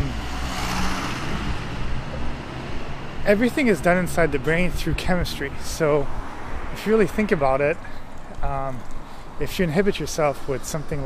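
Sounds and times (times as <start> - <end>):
car driving past: 0.0 - 3.2.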